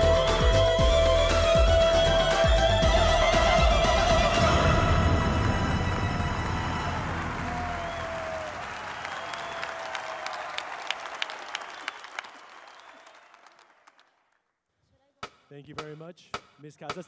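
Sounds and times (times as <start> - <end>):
music: 0.0 - 8.5
audience applause: 3.7 - 14.3.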